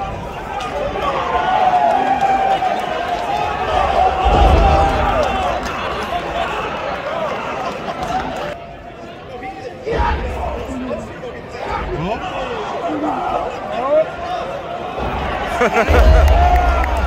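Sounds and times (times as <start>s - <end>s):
crowd shouting and cheering: 0.0s - 17.0s.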